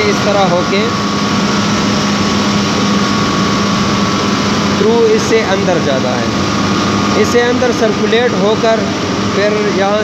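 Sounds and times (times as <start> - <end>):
turbine generator hum and whine: 0.0 - 10.0.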